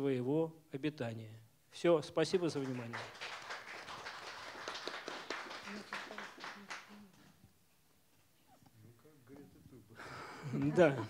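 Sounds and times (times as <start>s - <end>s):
audience applauding: 2.3s - 7.2s.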